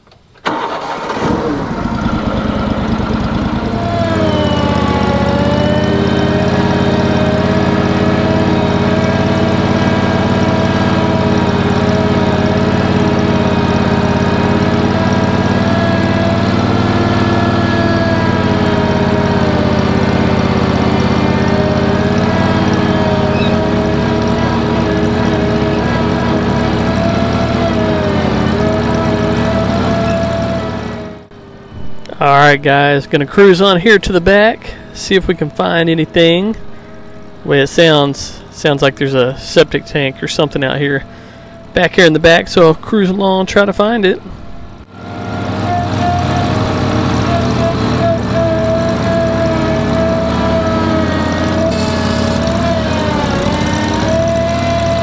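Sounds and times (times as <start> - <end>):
tractor engine running hard: 0.4 - 55.0
brush mower cutting tall grass: 0.5 - 31.0, 45.0 - 55.0.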